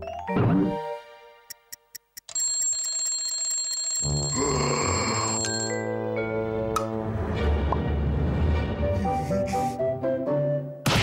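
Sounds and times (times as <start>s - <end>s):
music: 0.0s - 1.9s, 4.1s - 11.0s
wristwatch alarm ringing: 2.3s - 5.9s.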